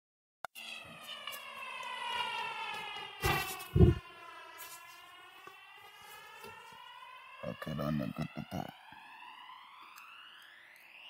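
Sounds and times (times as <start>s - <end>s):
siren wailing: 0.5s - 11.0s
click: 9.9s - 10.9s.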